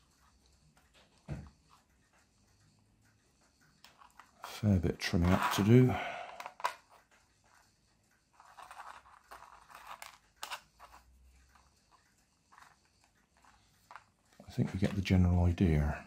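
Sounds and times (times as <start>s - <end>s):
plastic parts clicking and scraping: 3.8s - 7.2s, 8.4s - 11.7s, 12.5s - 15.1s
scratchy rustling: 3.9s - 7.6s, 8.3s - 11.7s.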